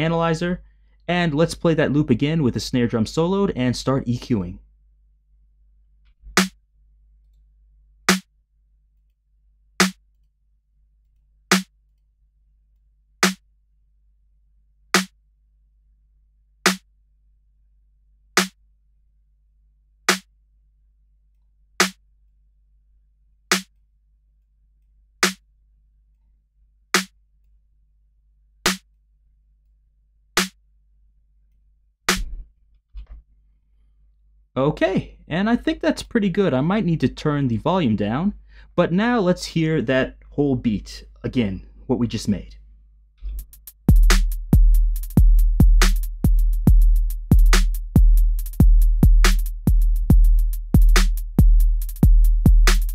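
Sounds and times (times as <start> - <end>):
electronic snare drum hits: 32.1 - 32.4, 43.3 - 46.2.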